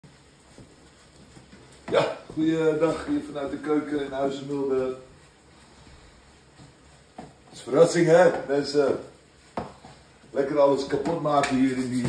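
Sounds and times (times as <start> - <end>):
man talking loudly: 1.9 - 5.0, 7.6 - 9.0.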